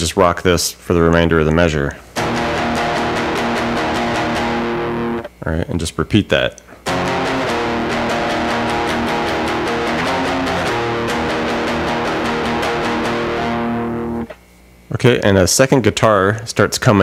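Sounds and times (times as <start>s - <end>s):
distorted electric guitar riff: 2.2s - 5.3s, 6.8s - 14.4s.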